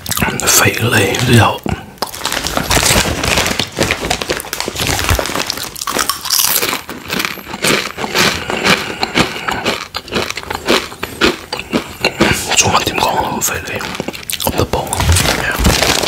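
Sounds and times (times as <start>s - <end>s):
chip bag crinkling: 0.0s - 16.0s.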